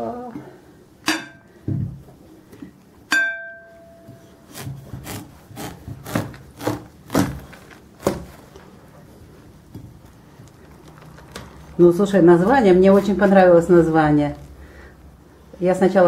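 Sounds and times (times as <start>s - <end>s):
sharp ringing clink: 3.1s - 4.2s
knife cutting crackling melon rind: 4.4s - 8.4s.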